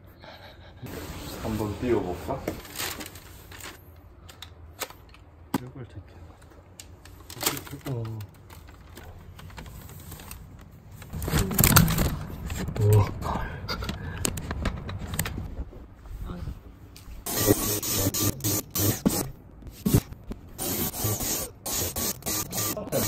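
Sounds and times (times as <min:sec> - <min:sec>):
plastic bag crinkling: 0:02.6 - 0:05.2, 0:06.9 - 0:12.7.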